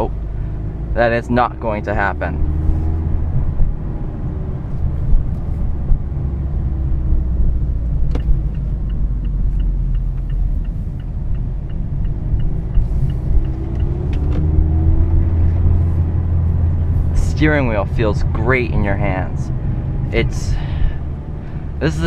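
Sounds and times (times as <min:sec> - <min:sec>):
car engine in cabin: 0:00.0 - 0:22.0
turn signal ticking: 0:02.4 - 0:20.2.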